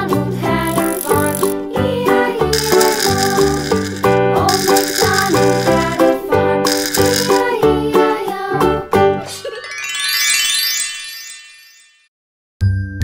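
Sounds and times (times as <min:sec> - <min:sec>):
upbeat children's music: 0:00.0 - 0:12.0
shaker rattling: 0:00.6 - 0:01.6, 0:02.5 - 0:06.1, 0:06.7 - 0:07.5.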